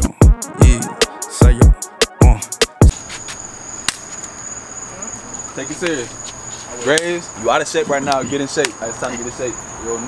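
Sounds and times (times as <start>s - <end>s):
crickets trilling: 2.2s - 10.0s.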